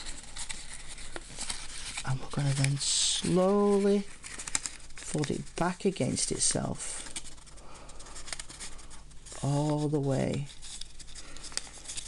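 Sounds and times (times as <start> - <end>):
paper rustling and crinkling: 0.0 - 12.0
small paper ticks: 4.3 - 5.4, 8.1 - 8.8.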